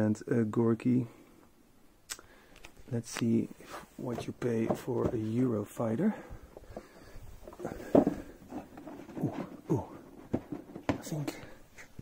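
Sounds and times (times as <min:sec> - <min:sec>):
cardboard box rustling: 0:07.4 - 0:11.3.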